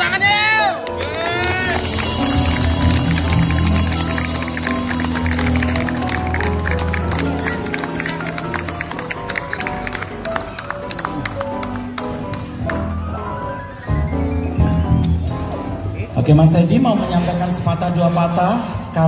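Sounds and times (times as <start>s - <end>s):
keyboard sustained notes: 0.8s - 17.3s
live band music: 0.9s - 16.0s
guitar sustained notes: 1.4s - 11.2s.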